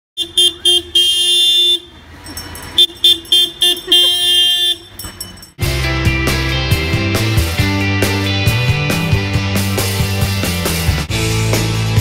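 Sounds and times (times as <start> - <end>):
truck horn toots and blasts: 0.2 - 2.1, 2.7 - 5.1
music: 5.6 - 12.0.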